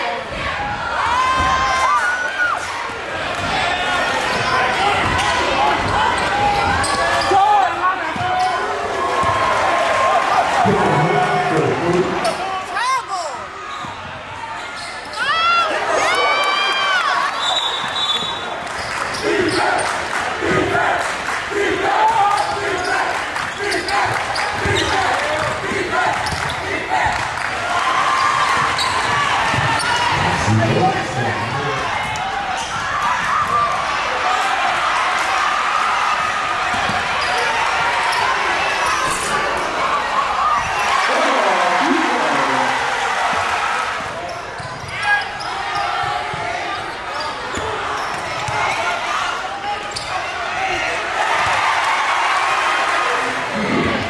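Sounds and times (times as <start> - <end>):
crowd voices: 0.0 - 54.0
sneakers squeaking: 4.3 - 7.4, 8.0 - 9.4, 13.6 - 15.5, 17.2 - 19.9, 22.2 - 26.7, 28.0 - 30.5, 32.0 - 33.2, 36.6 - 39.5, 44.0 - 48.9, 49.6 - 50.7.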